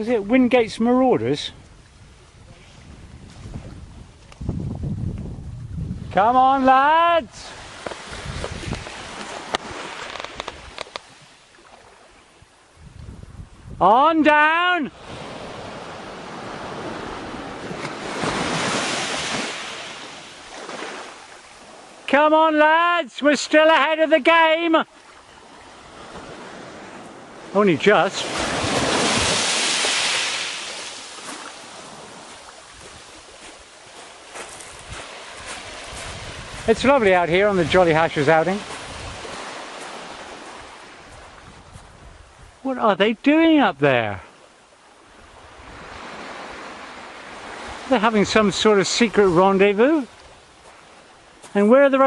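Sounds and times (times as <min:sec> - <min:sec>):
wind buffeting microphone: 0:01.5 - 0:06.4, 0:07.5 - 0:11.2, 0:12.4 - 0:13.8, 0:31.2 - 0:42.7
sharp clicks: 0:09.5 - 0:11.1
sea surf washing over rocks: 0:14.2 - 0:41.5, 0:45.3 - 0:52.0.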